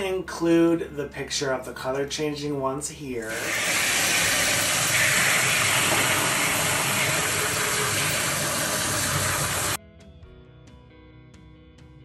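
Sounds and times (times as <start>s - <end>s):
faucet spraying water into sink: 3.2s - 9.8s.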